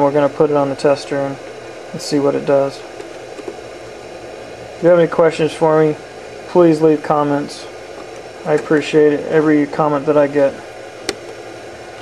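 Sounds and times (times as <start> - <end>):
man talking: 0.0 - 2.9, 4.8 - 7.8, 8.4 - 10.7
room noise hiss: 0.0 - 12.0.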